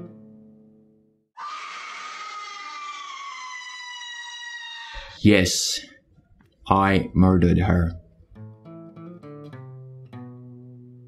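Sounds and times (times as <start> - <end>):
woman screaming: 1.4 - 5.2.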